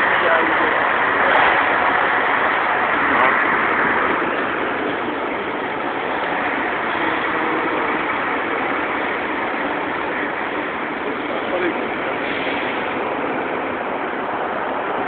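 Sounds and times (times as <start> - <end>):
bus idling: 0.0 - 15.0
vehicles rushing noise: 0.0 - 15.0.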